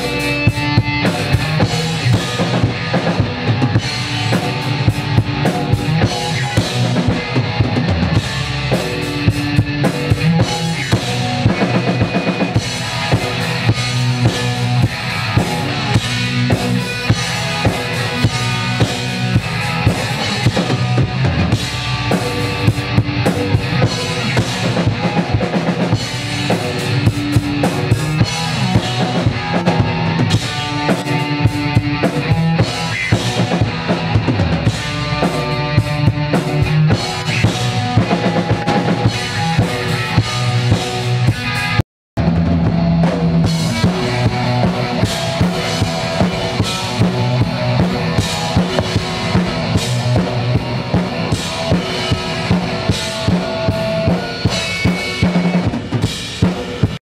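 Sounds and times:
drum kit beat: 0.0s - 57.0s
electric guitar: 0.0s - 57.0s.

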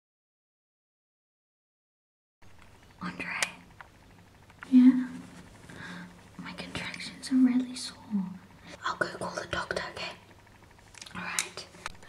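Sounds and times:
whispered speech: 3.0s - 3.6s, 6.4s - 10.2s, 11.1s - 11.8s.

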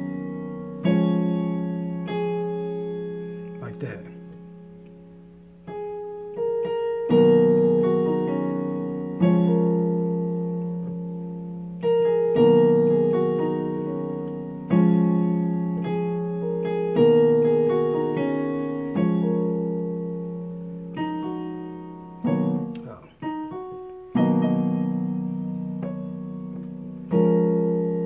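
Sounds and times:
electronic keyboard piano chords: 0.0s - 28.0s.

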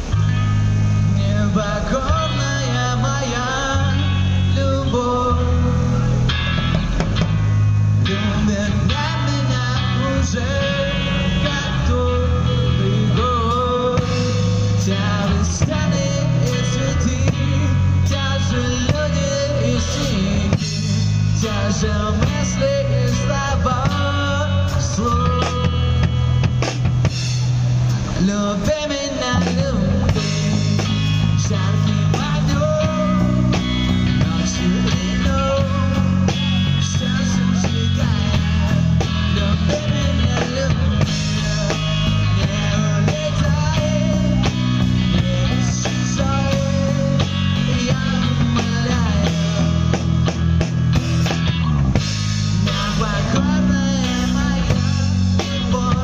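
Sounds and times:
rock band playing: 0.0s - 56.0s
man singing: 1.0s - 6.3s, 8.0s - 26.6s, 28.1s - 50.4s, 52.4s - 56.0s.

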